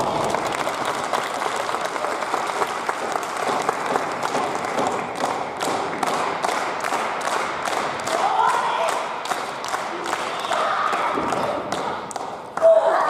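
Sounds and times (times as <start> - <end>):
audience applauding: 0.0 - 12.6
rhythmic clapping: 0.0 - 12.8.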